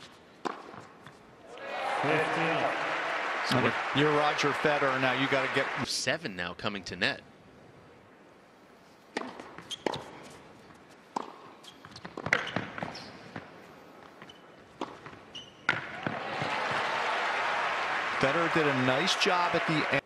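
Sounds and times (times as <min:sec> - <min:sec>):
racquet hitting tennis ball: 0:00.4 - 0:00.8, 0:09.1 - 0:10.2, 0:11.1 - 0:12.9, 0:14.8 - 0:16.8
tennis ball bouncing on court: 0:00.4 - 0:01.2, 0:09.1 - 0:10.4, 0:11.1 - 0:13.5, 0:14.2 - 0:16.8
crowd applause and cheering: 0:01.5 - 0:05.9, 0:15.9 - 0:20.0.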